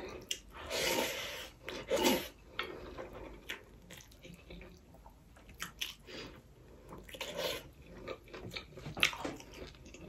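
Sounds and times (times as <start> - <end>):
person chewing food: 0.0 - 10.0.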